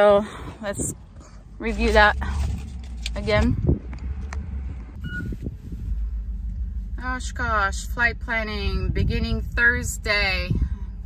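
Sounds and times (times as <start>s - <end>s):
low background rumble: 0.0s - 11.0s
short electronic beep: 5.0s - 5.4s.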